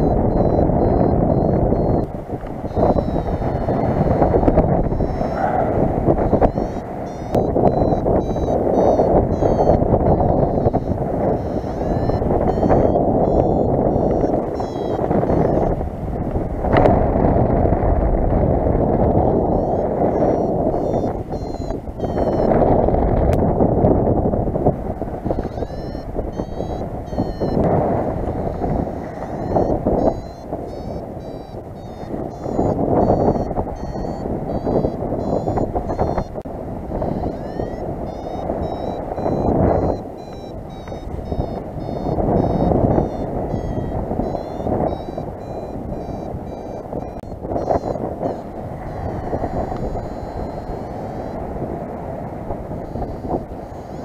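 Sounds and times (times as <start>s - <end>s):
variometer beeping: 0.0s - 54.0s
wind rushing over microphone: 0.0s - 54.0s.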